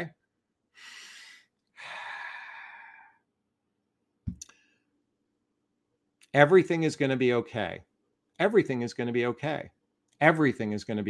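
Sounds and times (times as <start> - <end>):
man breathing in: 0.7 - 3.2
man sighing: 0.8 - 3.2.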